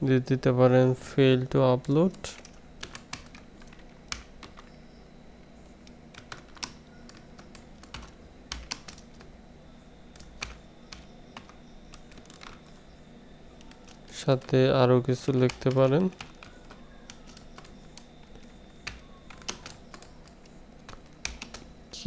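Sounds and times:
typing on computer keyboard: 1.8 - 4.7, 6.1 - 9.3, 10.1 - 12.7, 15.3 - 21.7.

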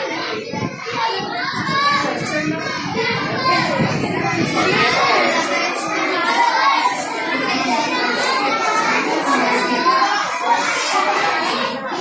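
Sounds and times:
children's voices babbling: 0.0 - 12.0.

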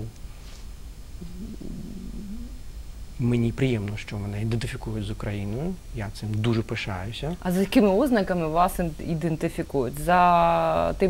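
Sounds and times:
man humming: 1.2 - 2.6.

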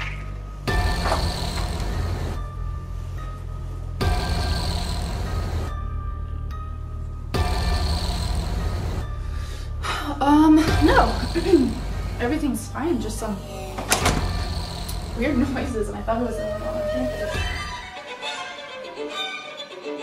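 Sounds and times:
low drone: 0.6 - 17.9
pulsing hissing swell: 0.7 - 2.6, 4.0 - 5.8, 7.4 - 18.0.

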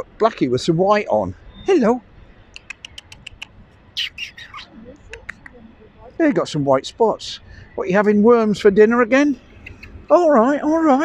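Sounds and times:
bird calls with high ticks: 2.4 - 5.6, 9.4 - 10.1.

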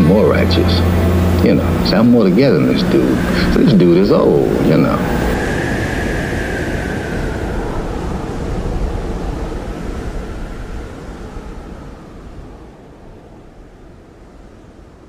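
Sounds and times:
steady rushing noise: 0.0 - 15.0.

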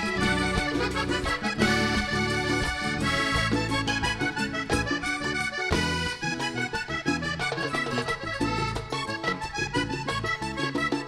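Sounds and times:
bass guitar: 0.0 - 11.0
button accordion: 0.0 - 11.0
percussion: 0.0 - 11.0.

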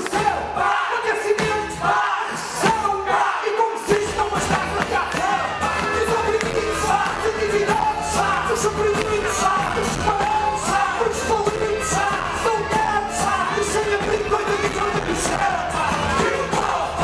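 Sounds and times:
lead singer singing: 0.0 - 17.0
live band playing pop song: 1.2 - 17.0
steady drum beat: 3.9 - 17.0.

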